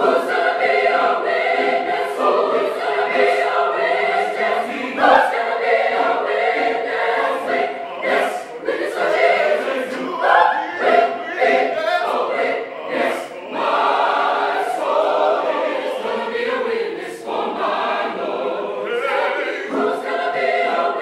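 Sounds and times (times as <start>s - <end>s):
choir singing gospel: 0.0s - 21.0s.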